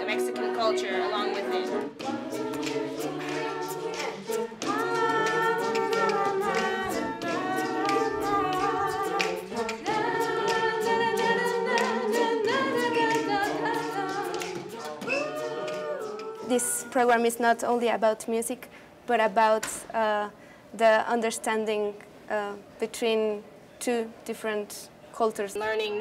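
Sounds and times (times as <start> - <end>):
choir singing a cappella: 0.0 - 17.3.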